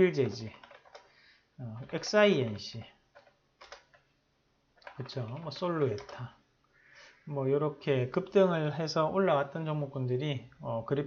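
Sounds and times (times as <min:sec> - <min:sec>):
computer keys clicking: 0:00.2 - 0:01.1, 0:01.8 - 0:04.1, 0:04.8 - 0:06.3.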